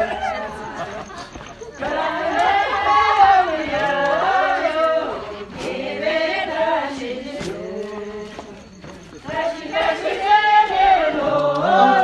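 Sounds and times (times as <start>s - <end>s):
group singing in chorus: 0.0s - 12.0s.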